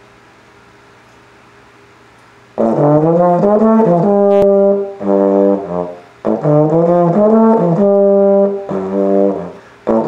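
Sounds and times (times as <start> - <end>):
faint steady hum: 0.0 - 10.0
slide trombone: 2.6 - 10.0.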